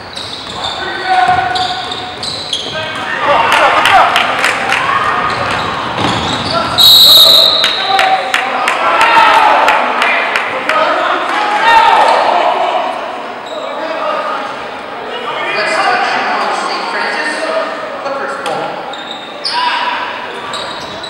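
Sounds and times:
players and spectators talking: 0.0s - 21.0s
basketball bouncing on court: 1.2s - 3.0s, 5.3s - 6.5s
referee's whistle: 6.3s - 8.1s.

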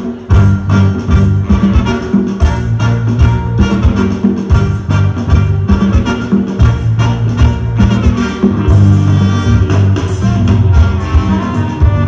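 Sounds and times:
held bass line: 0.0s - 12.0s
live band with brass and guitar: 0.0s - 12.0s.

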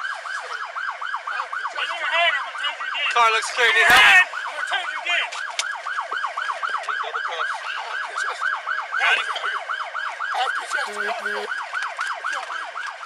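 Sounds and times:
police siren yelping: 0.0s - 13.0s.

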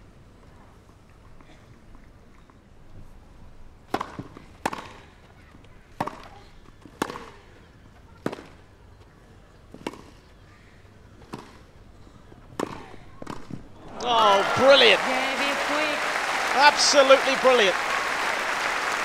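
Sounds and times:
tennis ball hit with rackets: 3.9s - 5.0s, 7.0s - 7.3s, 12.6s - 14.1s.

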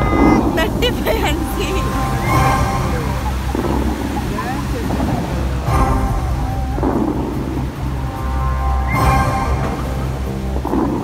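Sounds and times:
fountain water jets rushing: 0.0s - 11.0s.

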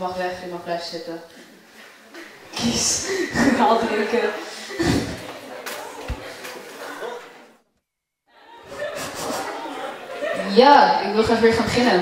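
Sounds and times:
audience chatter and laughter: 1.4s - 7.7s, 8.3s - 12.0s.

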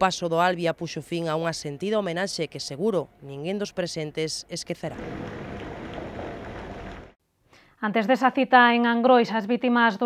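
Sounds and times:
passenger train passing: 4.9s - 7.2s.

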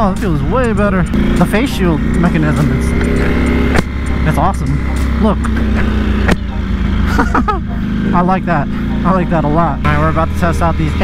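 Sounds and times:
motorcycle engine running: 0.0s - 11.0s
person laughing: 7.0s - 8.0s.

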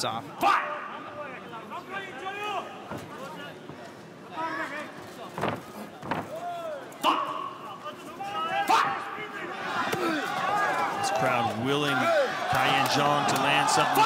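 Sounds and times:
crowd shouting: 6.3s - 14.0s.

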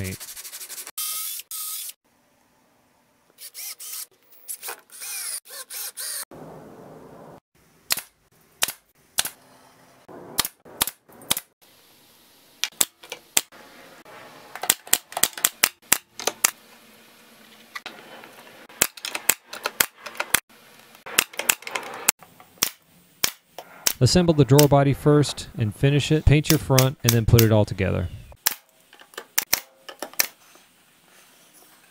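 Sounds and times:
pneumatic nailer firing: 7.9s - 9.4s.

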